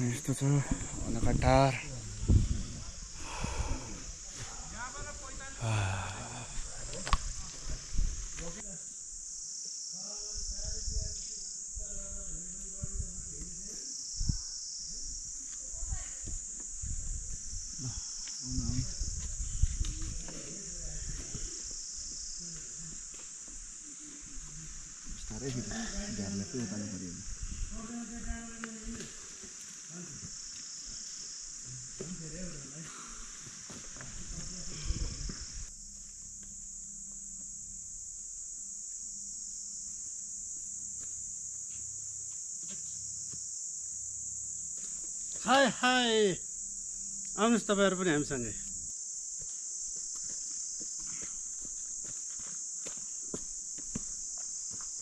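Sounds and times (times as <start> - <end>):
insects droning: 0.0 - 55.0.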